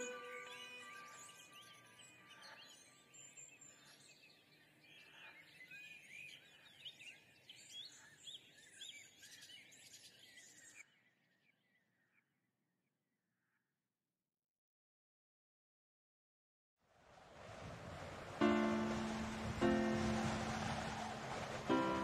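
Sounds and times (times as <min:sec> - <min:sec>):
faint high chirping: 0:00.0 - 0:12.2.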